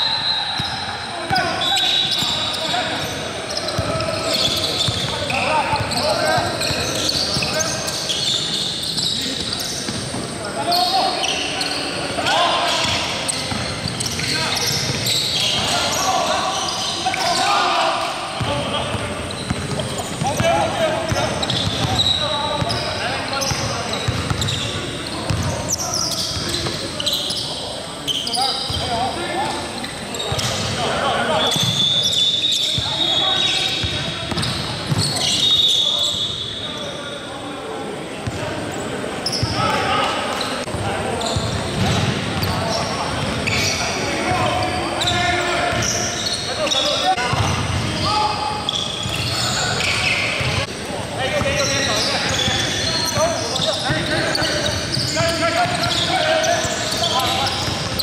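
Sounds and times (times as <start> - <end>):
sneaker squeaks: 0.0 - 37.4, 38.2 - 58.0
players calling out: 0.0 - 58.0.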